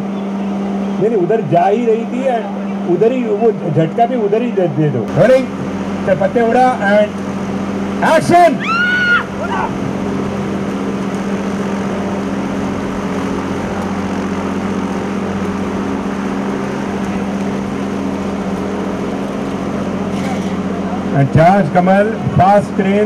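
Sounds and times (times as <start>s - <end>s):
low mechanical hum: 0.0s - 23.0s
person shouting: 8.4s - 9.7s.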